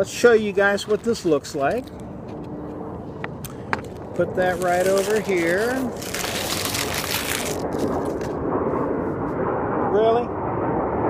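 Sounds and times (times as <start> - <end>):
airplane roar: 0.0 - 11.0
paper wrapper crinkling: 0.1 - 2.5, 3.5 - 8.4.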